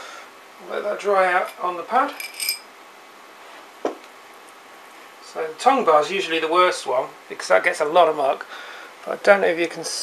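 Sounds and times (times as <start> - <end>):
clinks of small hard objects: 1.4 - 2.7.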